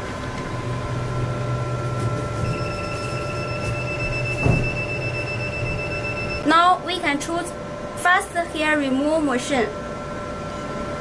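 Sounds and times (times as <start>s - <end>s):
machine cooling hum: 0.0s - 11.0s
high electronic beep: 2.4s - 6.4s.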